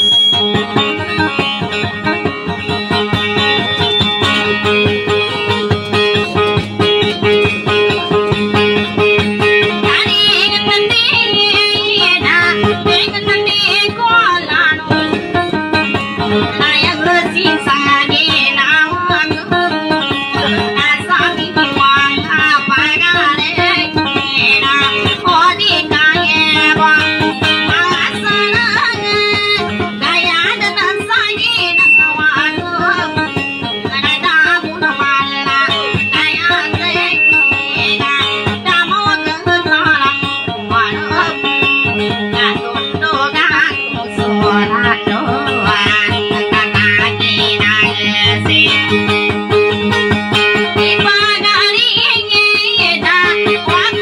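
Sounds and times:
plucked boat lute melody: 0:00.0 - 0:54.0.

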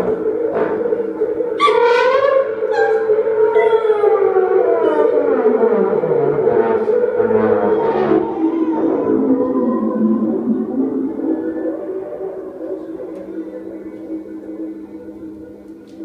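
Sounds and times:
slow downward pitch slide: 0:00.0 - 0:16.0
steady held drone: 0:00.0 - 0:16.0
wavering high tone: 0:00.0 - 0:16.0.

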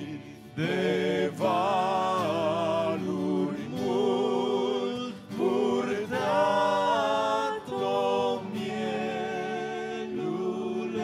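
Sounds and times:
acoustic guitar: 0:00.0 - 0:11.0
congregation singing a hymn: 0:00.0 - 0:11.0.

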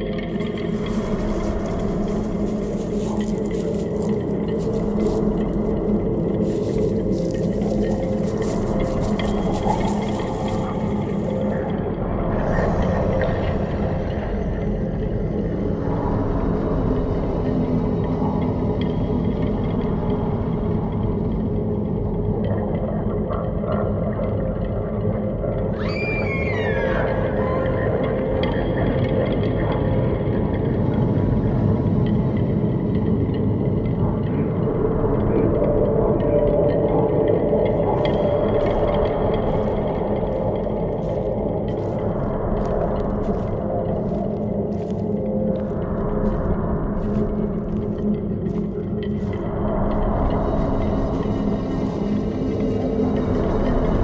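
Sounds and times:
dark ambient drone: 0:00.0 - 0:54.0
low rumbling: 0:33.8 - 0:54.0.

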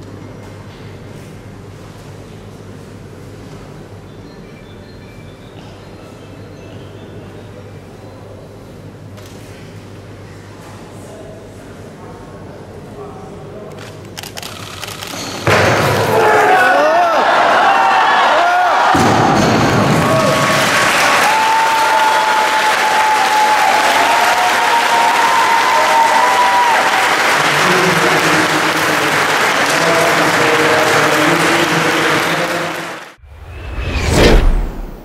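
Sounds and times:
audience applauding: 0:19.8 - 0:33.2
rising whoosh: 0:33.2 - 0:35.0.

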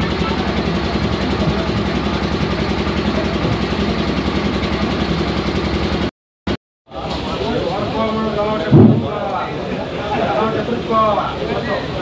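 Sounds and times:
engine idling: 0:00.0 - 0:06.1.

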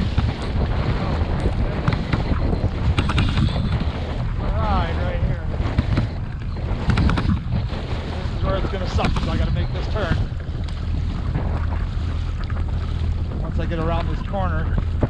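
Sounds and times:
waves splashing against kayak hull: 0:00.0 - 0:15.0
wind buffeting microphone: 0:00.0 - 0:15.0.

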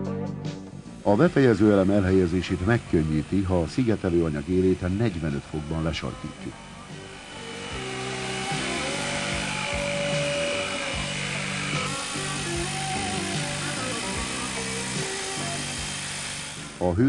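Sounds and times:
background music: 0:00.0 - 0:17.0
electric jigsaw cutting foam: 0:00.6 - 0:17.0.

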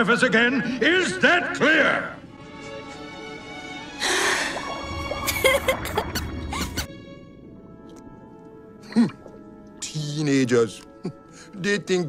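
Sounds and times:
music with soft held notes: 0:00.6 - 0:12.0.

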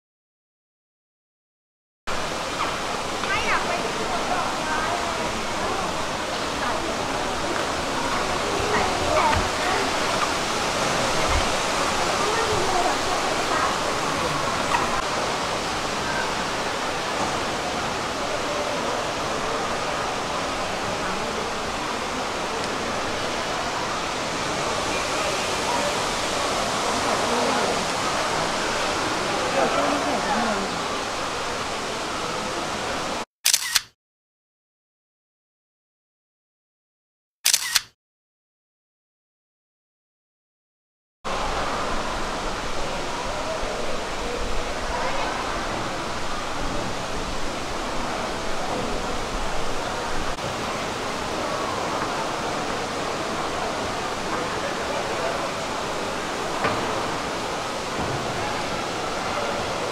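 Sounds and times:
crowd chatter: 0:02.1 - 0:33.2, 0:41.3 - 0:59.9
indoor waterfall rushing: 0:02.1 - 0:33.3, 0:41.3 - 0:59.9.

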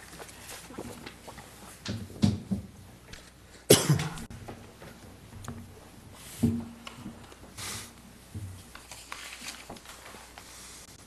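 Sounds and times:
man coughing: 0:03.7 - 0:04.2.

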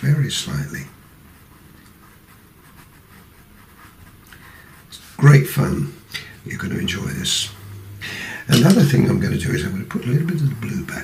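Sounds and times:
pencil scratching on paper: 0:00.0 - 0:05.7, 0:09.0 - 0:11.0.

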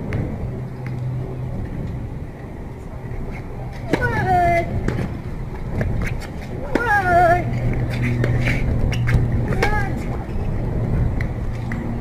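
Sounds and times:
steady low hum: 0:00.0 - 0:12.0
tennis racket hitting ball: 0:03.8 - 0:10.1.

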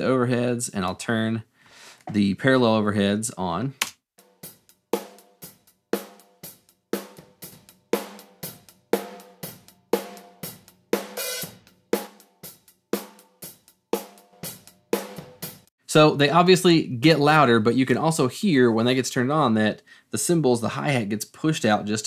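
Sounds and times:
drum kit playing: 0:04.2 - 0:17.6.

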